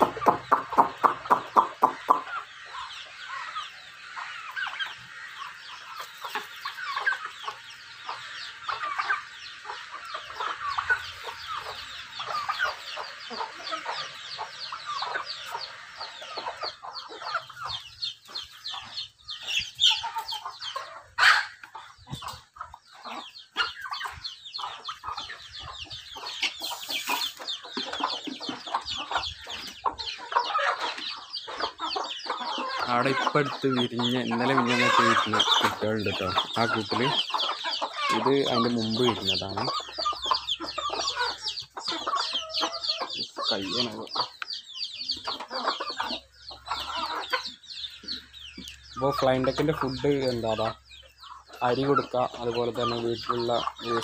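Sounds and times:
chickens clucking: 0.0s - 54.0s.

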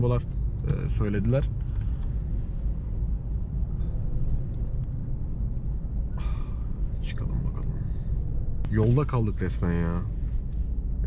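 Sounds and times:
low car cabin rumble: 0.0s - 11.0s.

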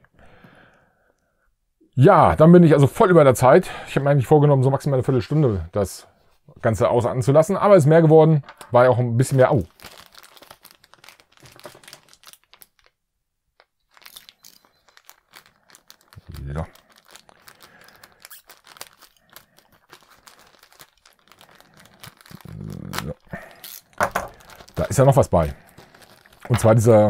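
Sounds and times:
plastic bag crinkling: 8.4s - 13.0s, 13.6s - 27.0s.

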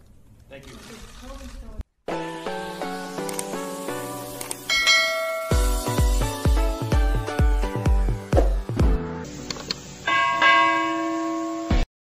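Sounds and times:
bell-like chime ringing: 4.7s - 5.8s, 10.0s - 11.9s.

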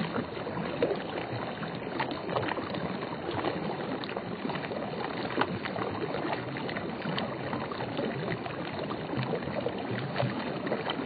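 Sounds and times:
small splashes and drips: 0.0s - 11.0s
stream water running: 0.0s - 11.0s.

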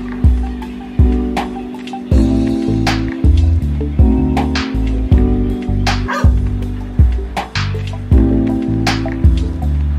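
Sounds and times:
deep bass line: 0.0s - 9.9s.

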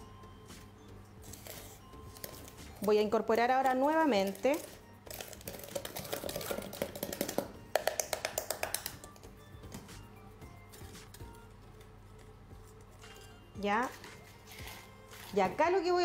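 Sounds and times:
background music: 0.0s - 16.0s
spoon stirring in plastic beaker: 1.2s - 9.2s, 12.6s - 15.6s.

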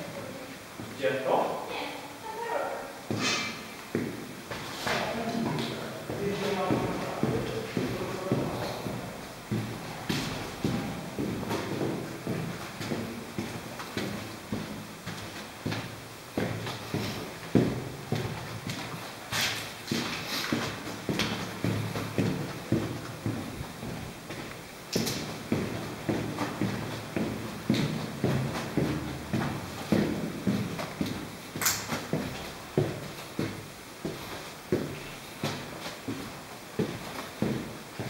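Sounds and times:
footsteps on hard floor: 3.0s - 38.0s.

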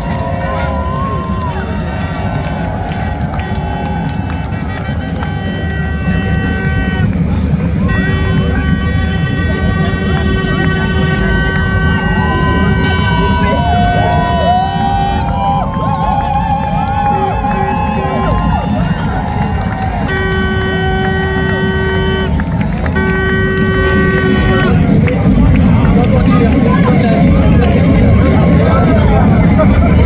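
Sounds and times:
voices whooping and calling out: 0.0s - 5.6s, 8.0s - 24.9s
crowd and street noise: 0.0s - 30.0s.

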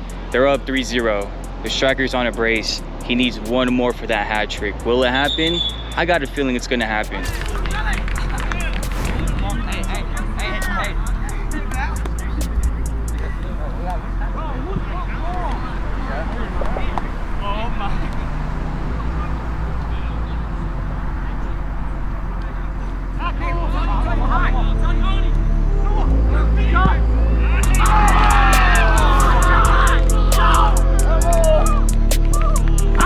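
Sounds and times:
background music with bass line: 0.0s - 33.0s
voices calling out: 4.2s - 33.0s.

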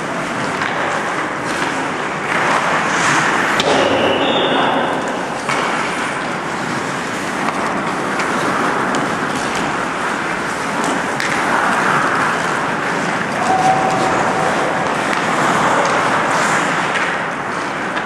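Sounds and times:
steady rushing noise: 0.0s - 18.0s.

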